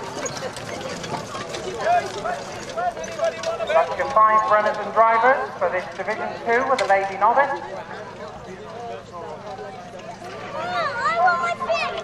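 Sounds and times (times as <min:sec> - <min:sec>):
people chatting: 0:00.0 - 0:12.0.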